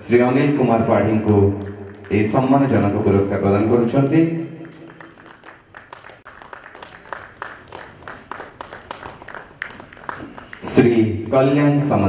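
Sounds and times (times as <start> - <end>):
audience applauding: 4.6 - 11.0.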